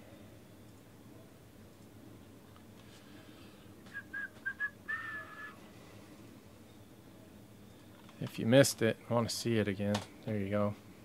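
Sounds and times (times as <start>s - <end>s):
person whistling: 3.9s - 5.6s.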